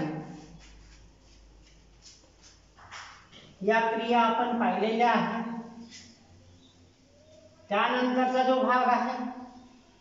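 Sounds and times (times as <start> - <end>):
duster wiping whiteboard: 0.1 - 3.3.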